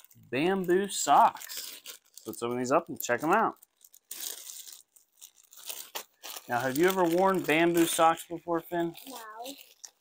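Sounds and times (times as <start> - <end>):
plastic bag crinkling and tearing: 0.0 - 10.0.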